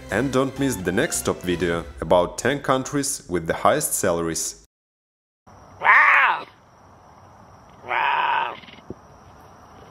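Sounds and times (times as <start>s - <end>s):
cougar call: 5.8s - 6.6s, 7.7s - 8.9s.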